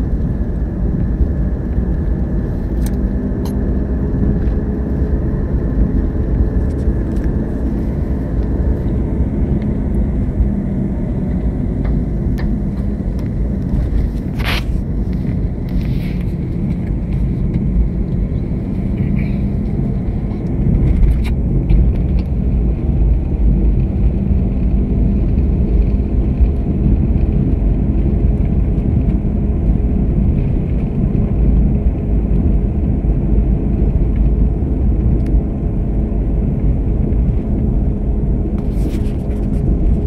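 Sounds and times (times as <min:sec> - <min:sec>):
car engine and tyres rumbling inside: 0:00.0 - 0:40.0.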